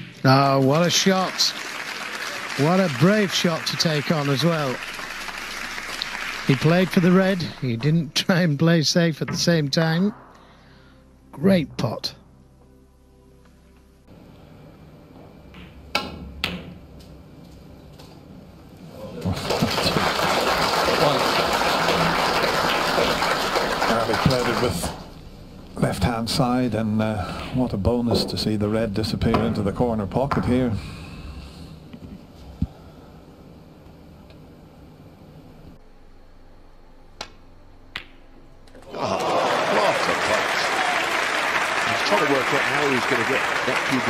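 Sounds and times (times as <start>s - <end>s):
low steady hum: 0.0s - 44.0s
audience applause: 0.3s - 7.8s, 19.0s - 25.2s, 38.8s - 44.0s.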